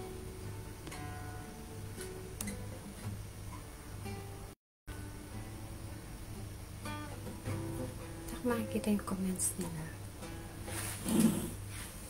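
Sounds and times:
soft acoustic guitar music: 0:00.0 - 0:12.0.

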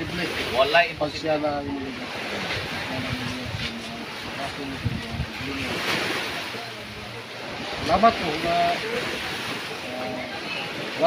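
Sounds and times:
wind on microphone: 0:00.0 - 0:10.9
sea waves washing on shore: 0:00.0 - 0:11.0.

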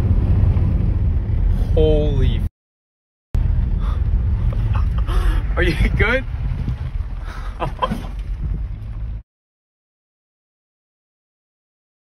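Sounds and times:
car driving on gravel: 0:00.0 - 0:02.4, 0:03.4 - 0:09.2
wind on microphone: 0:03.4 - 0:09.2.

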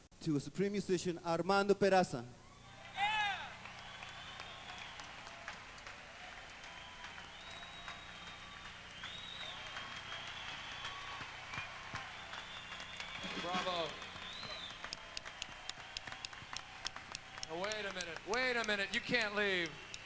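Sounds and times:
loud shout: 0:02.4 - 0:07.7
audience applauding and cheering: 0:02.4 - 0:20.0
high whistles: 0:02.5 - 0:05.6, 0:06.5 - 0:20.0.

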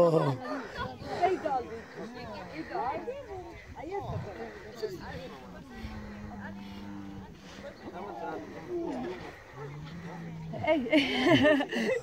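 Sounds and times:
people chattering: 0:00.0 - 0:12.0
camel groaning: 0:07.8 - 0:10.9.

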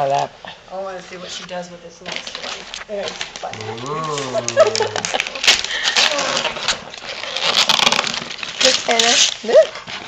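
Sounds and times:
wrapping paper rustling: 0:02.1 - 0:10.0
person speaking: 0:03.5 - 0:05.2.

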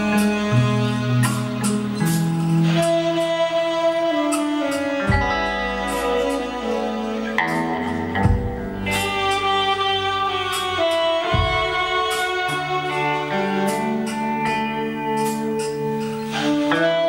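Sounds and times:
cymbal strokes: 0:00.0 - 0:17.0
electric guitar melody: 0:00.0 - 0:17.0
sparse drums: 0:07.4 - 0:16.8
kick drum thump: 0:08.2 - 0:08.8, 0:11.4 - 0:11.9.

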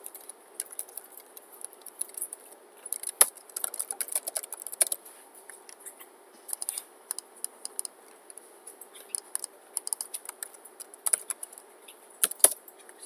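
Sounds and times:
computer keyboard typing: 0:00.0 - 0:05.0, 0:06.5 - 0:11.6, 0:12.2 - 0:12.6.

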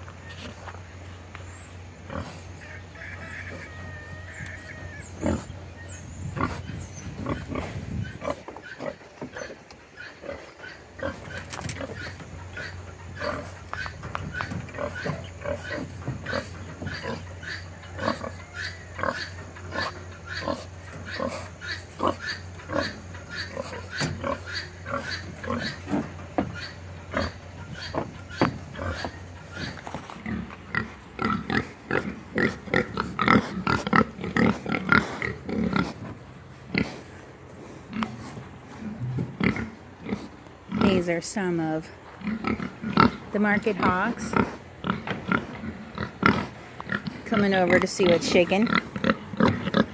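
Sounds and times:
boar grunting: 0:02.0 - 0:41.5.

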